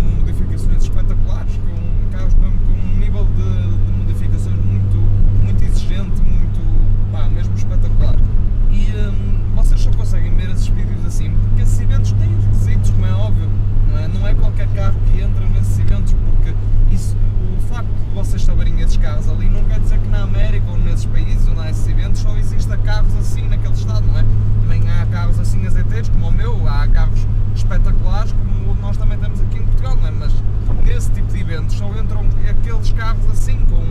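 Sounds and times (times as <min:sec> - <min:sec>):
car engine and road drone: 0:00.0 - 0:33.9
man talking: 0:00.0 - 0:33.9.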